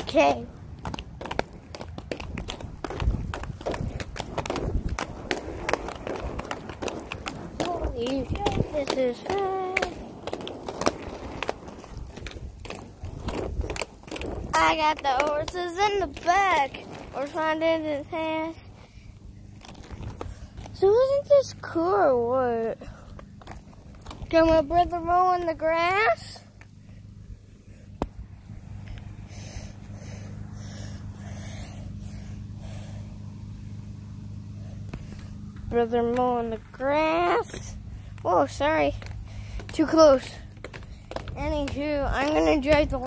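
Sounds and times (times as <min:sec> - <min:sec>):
skate wheels rolling on pavement: 0:00.0 - 0:43.0.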